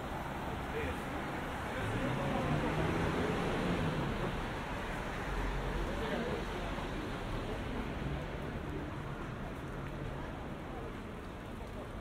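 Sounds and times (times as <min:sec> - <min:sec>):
crowd noise: 0:00.0 - 0:12.0
faint voices of passers-by: 0:00.0 - 0:12.0
traffic: 0:00.0 - 0:12.0.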